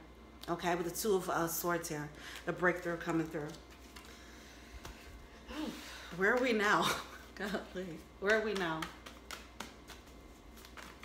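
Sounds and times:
cards being shuffled: 3.1 - 4.2, 6.1 - 6.7, 8.0 - 11.0.

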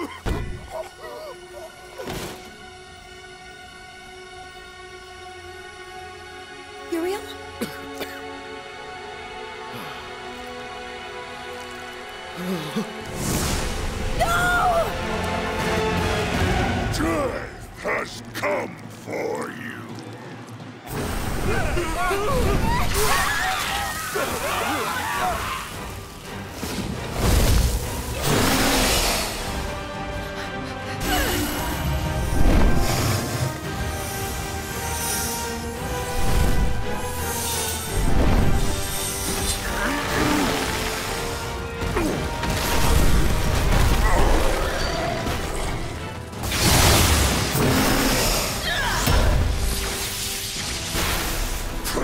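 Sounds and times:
dramatic soundtrack music: 0.0 - 52.0.

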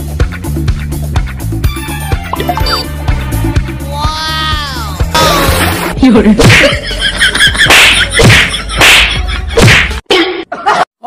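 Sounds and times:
punch smacks with low thuds: 8.2 - 10.0.

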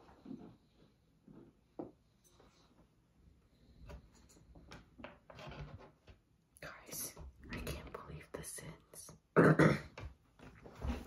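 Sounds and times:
woman whispering: 6.6 - 9.4.

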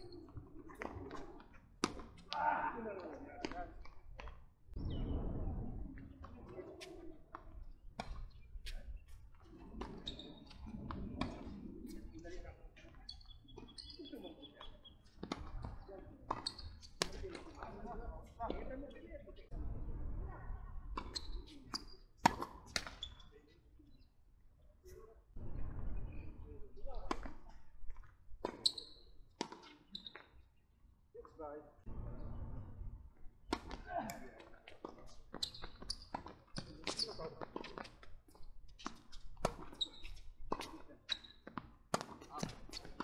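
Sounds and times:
tennis balls bouncing on court: 0.1 - 2.4, 3.0 - 4.4, 13.5 - 17.8, 20.9 - 23.2, 27.0 - 30.3, 33.5 - 43.0
wind rumble on microphone: 4.8 - 6.6, 19.5 - 21.0
tennis ball bouncing and struck: 20.9 - 23.0.

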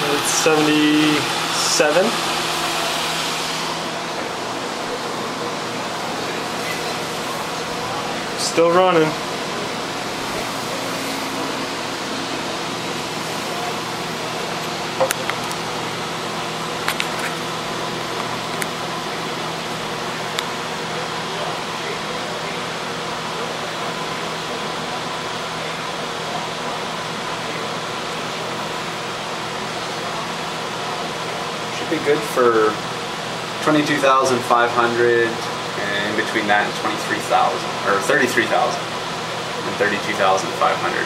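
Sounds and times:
computer fans whirring: 0.0 - 41.0.

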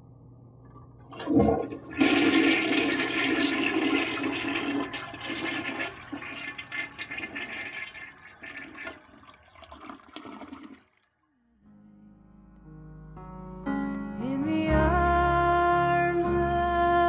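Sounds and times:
toilet flushing: 1.0 - 11.1.

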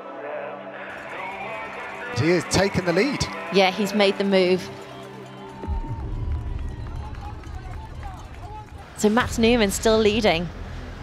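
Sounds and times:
steady low rumble: 5.7 - 11.0.

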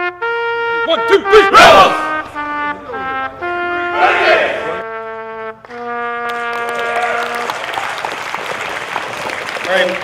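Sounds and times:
trumpet holding long note: 0.0 - 7.6
crowd applauding: 6.2 - 10.0.

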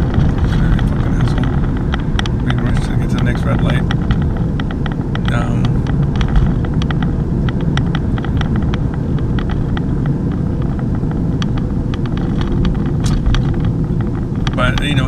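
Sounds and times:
car engine and tyre rumble: 0.0 - 15.0
light clicks and rattles: 0.0 - 15.0.

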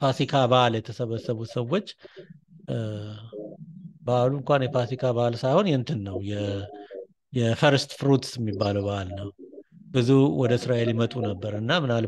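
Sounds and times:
man narrating: 0.0 - 3.4, 4.0 - 9.4, 10.0 - 12.0.

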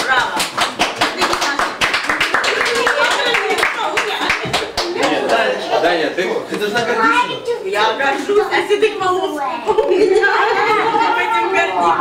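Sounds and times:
people clapping: 0.0 - 5.6.

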